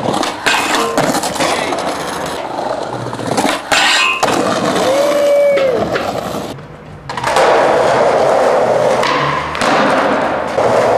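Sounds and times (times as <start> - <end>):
skateboard wheels rolling on concrete: 0.0 - 10.9.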